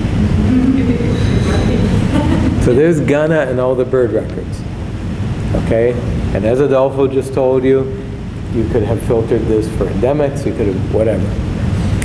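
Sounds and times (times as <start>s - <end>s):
low room noise rumble: 0.0s - 12.0s.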